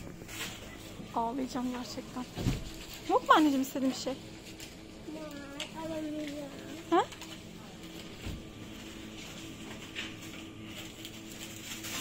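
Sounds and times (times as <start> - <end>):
faint handling rustles: 0.0 - 12.0
low electrical hum: 0.0 - 12.0.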